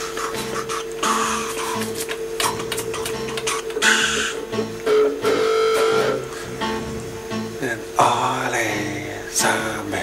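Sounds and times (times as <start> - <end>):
blues guitar: 0.2 - 9.9.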